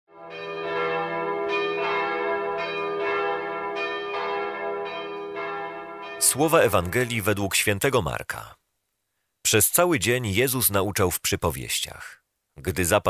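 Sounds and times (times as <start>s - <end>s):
bells ringing: 0.2s - 7.3s.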